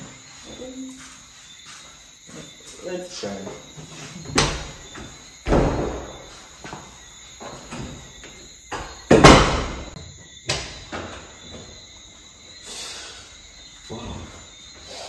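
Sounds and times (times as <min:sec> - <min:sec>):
wooden door banging: 0:04.2 - 0:06.4, 0:07.4 - 0:11.2.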